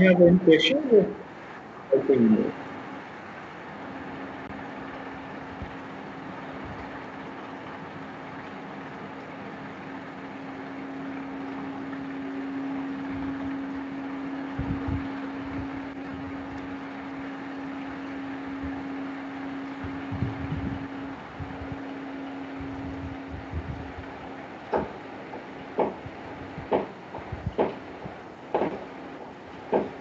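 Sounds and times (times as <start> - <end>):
low hum: 0.0 - 30.0
soft low thumps: 19.8 - 21.8, 22.6 - 24.1, 25.8 - 28.7.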